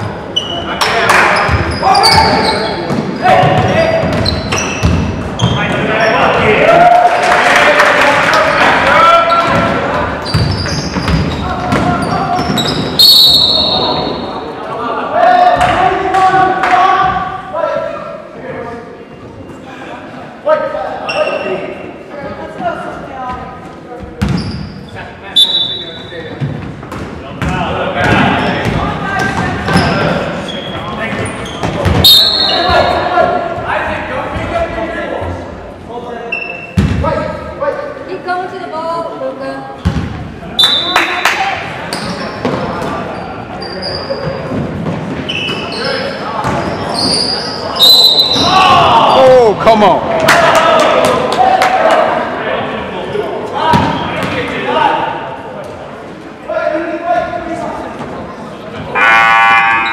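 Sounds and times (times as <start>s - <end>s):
people calling out and talking: 0.0s - 59.9s
basketball bouncing on wooden court: 2.9s - 5.6s, 9.4s - 12.8s.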